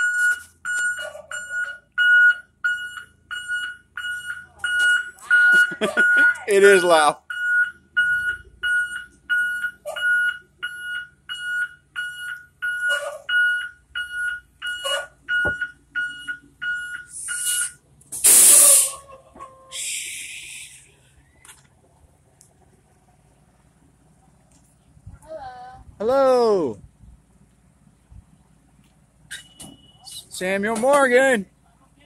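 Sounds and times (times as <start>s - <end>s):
bus warning beeper: 0.0s - 20.9s, 29.3s - 30.3s
bus air brake hiss: 17.1s - 19.1s, 19.7s - 21.0s.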